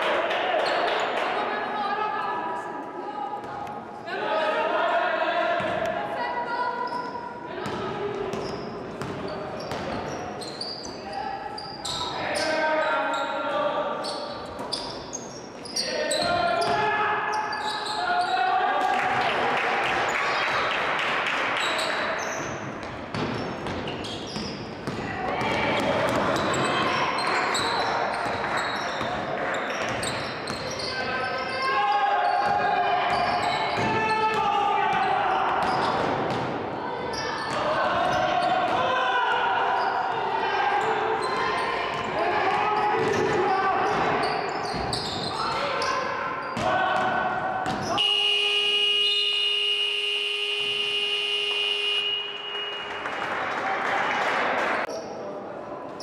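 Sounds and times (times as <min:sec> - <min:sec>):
voices echoing in hall: 0:00.0 - 0:56.0
electronic game horn: 0:48.0 - 0:52.8.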